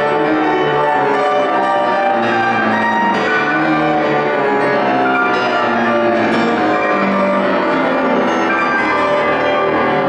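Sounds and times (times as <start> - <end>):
loud grand piano chords: 0.0 - 10.0.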